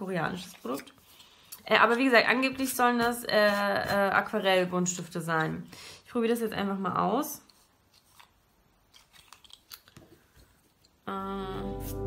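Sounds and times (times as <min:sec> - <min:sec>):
wooden pencils clicking together: 0:08.9 - 0:10.2.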